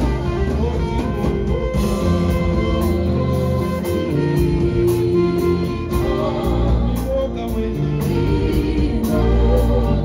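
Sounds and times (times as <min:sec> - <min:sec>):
worship band music: 0:00.0 - 0:10.0.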